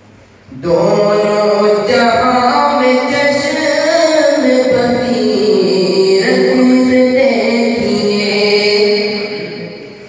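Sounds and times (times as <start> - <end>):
man chanting: 0.5 - 10.0.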